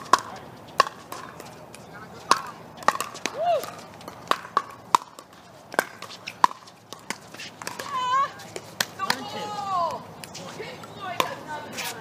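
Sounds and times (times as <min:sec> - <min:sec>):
paddle striking ball: 0:00.0 - 0:10.0.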